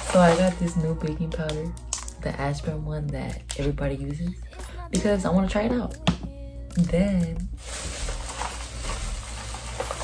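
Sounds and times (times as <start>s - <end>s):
plastic bags rustling: 0.0s - 2.6s, 7.0s - 10.0s.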